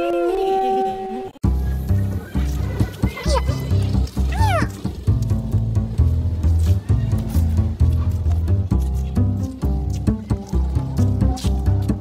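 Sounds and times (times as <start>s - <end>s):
music with heavy bass beat: 1.4s - 12.0s.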